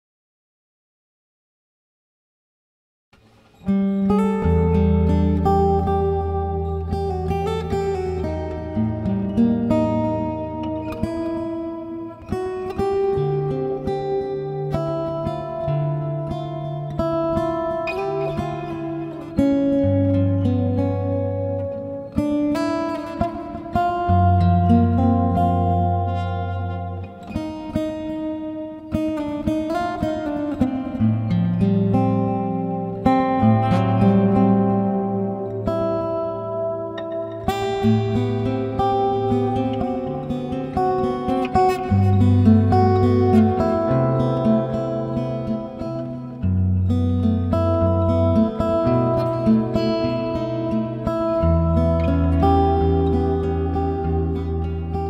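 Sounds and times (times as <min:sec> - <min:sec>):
fingerstyle acoustic guitar: 0:03.2 - 0:55.0.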